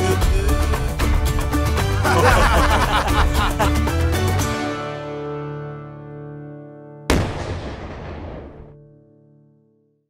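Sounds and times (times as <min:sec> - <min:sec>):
cannon shot: 0:07.1 - 0:08.8.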